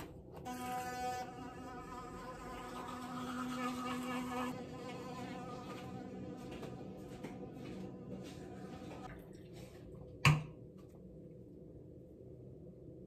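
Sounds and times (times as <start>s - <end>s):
electric toothbrush buzzing: 0.4s - 6.6s.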